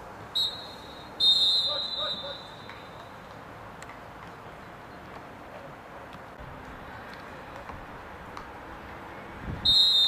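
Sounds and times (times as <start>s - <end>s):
referee's whistle blast: 0.4s - 2.9s, 9.6s - 10.0s.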